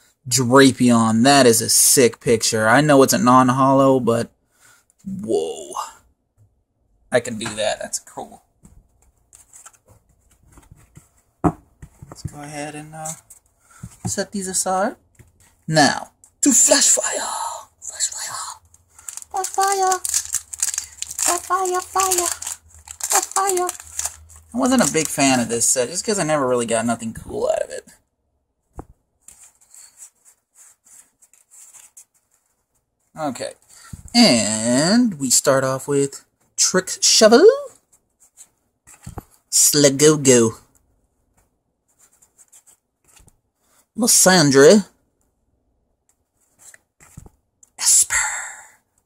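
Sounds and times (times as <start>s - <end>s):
trading cards rustling: 18.0s - 26.3s
foil pack crinkling: 18.9s - 25.5s.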